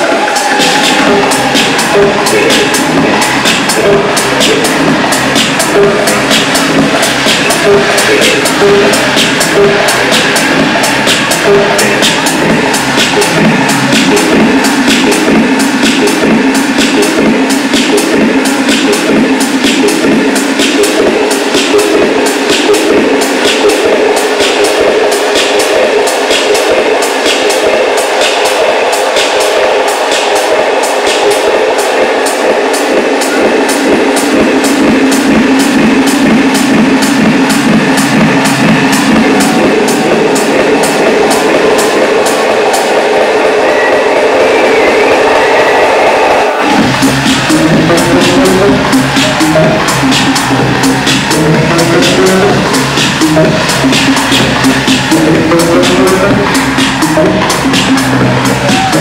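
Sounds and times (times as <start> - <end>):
sustained synth drone: 0.0 - 26.1.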